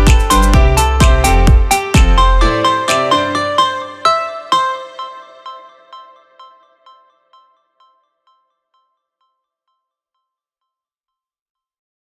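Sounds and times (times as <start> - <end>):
background music melody: 0.0 - 9.4.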